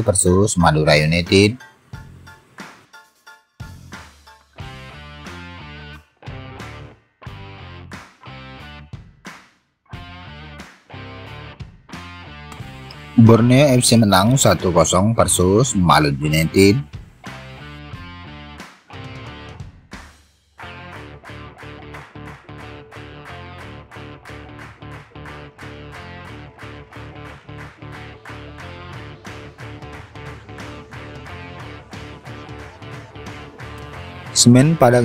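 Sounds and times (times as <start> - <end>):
background music led by guitar: 0.0 - 35.0.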